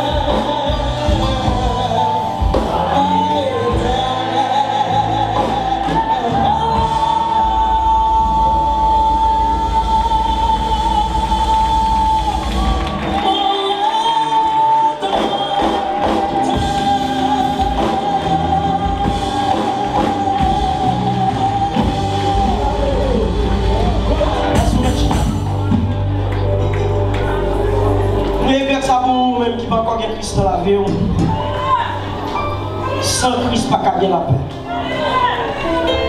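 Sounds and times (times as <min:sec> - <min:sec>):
woman singing into microphone: 0:00.0 - 0:25.4
instrumental accompaniment: 0:00.0 - 0:36.0.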